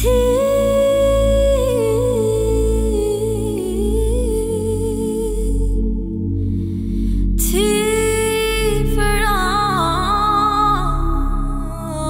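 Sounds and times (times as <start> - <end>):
woman singing wordless phrase: 0.0 - 6.0, 7.4 - 12.0
deep sustained bass: 0.0 - 12.0.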